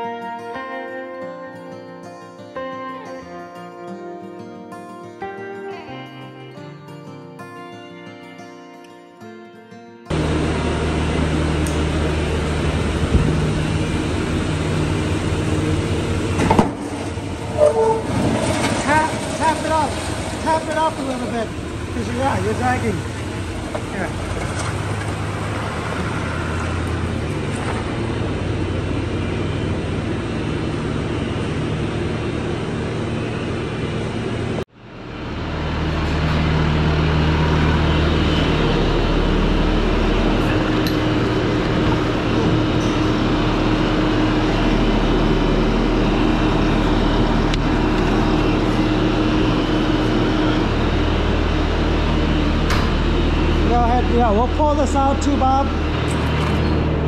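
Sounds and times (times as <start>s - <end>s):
diesel engine humming: 10.1s - 57.0s
vehicle engine idling: 10.1s - 57.0s.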